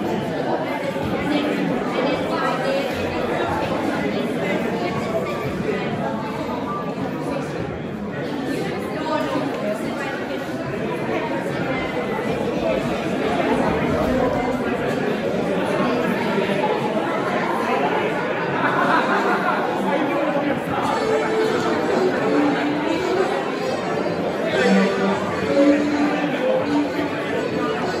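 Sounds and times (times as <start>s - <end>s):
hubbub of overlapping voices: 0.0s - 28.0s.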